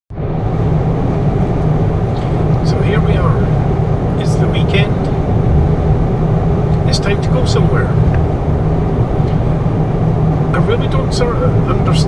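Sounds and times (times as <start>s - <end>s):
car cabin road and engine rumble: 0.1s - 12.0s.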